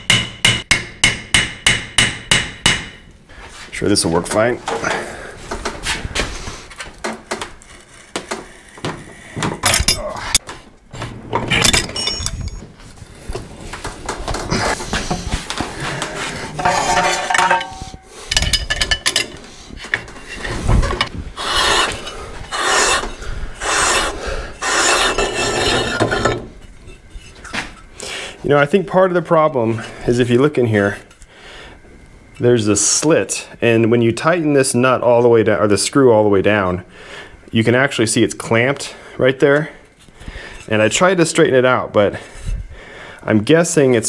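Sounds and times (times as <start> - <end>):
metal clinks and knocks: 11.4 - 12.8, 16.6 - 19.4
metal scraping on metal: 16.2 - 27.9.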